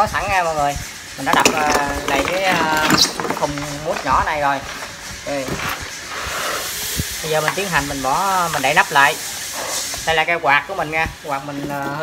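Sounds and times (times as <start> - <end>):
soft rasping hiss of foam: 3.3 - 12.0.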